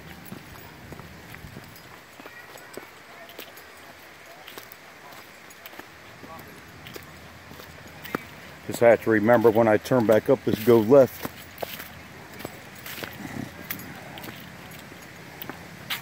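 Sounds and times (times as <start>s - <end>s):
footsteps on stony trail with leaves: 0.0s - 16.0s.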